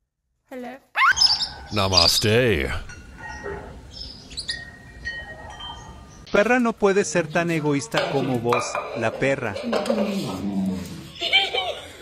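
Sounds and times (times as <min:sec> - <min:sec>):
small birds chirping: 0:01.0 - 0:06.4.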